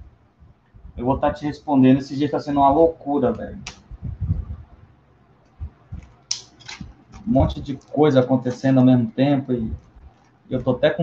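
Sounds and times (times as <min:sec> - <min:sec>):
shrink wrap crinkling rips: 0:06.0 - 0:08.8.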